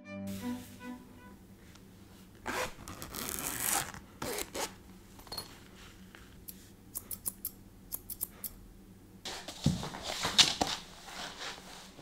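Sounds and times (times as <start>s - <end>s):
zipper pulled open: 2.4s - 4.8s
scissors clicking: 6.9s - 8.6s.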